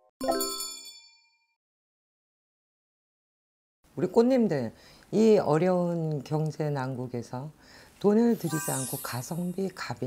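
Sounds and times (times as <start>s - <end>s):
bright chime ringing: 8.3s - 9.6s.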